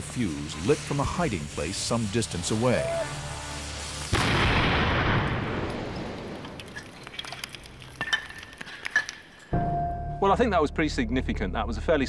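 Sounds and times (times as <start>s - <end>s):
loud explosion blast: 4.1s - 6.2s.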